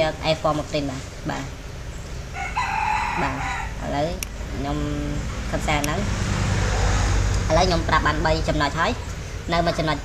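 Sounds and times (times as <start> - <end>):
person speaking: 3.0 - 6.3, 7.3 - 10.0.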